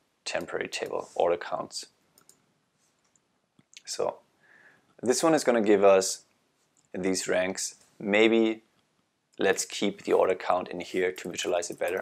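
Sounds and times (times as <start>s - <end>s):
person speaking: 0.2s - 2.0s, 5.0s - 8.8s, 9.4s - 12.0s
computer mouse clicks: 2.2s - 2.4s.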